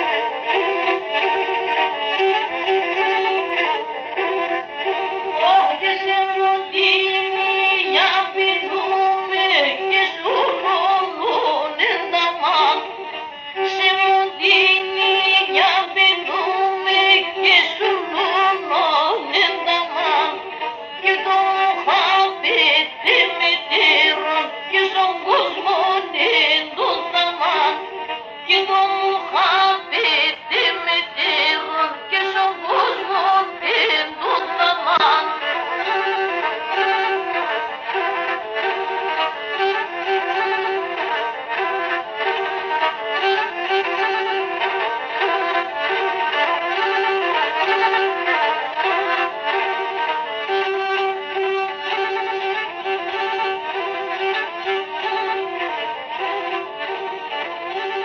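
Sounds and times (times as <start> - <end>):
ornamented folk melody: 0.0 - 58.0.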